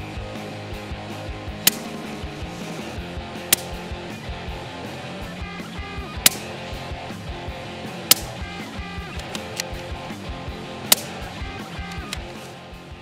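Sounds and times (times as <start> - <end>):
guitar music: 0.0 - 13.0
rifle shots: 1.6 - 2.4, 3.4 - 3.9, 6.2 - 6.9, 8.0 - 9.9, 10.8 - 12.5.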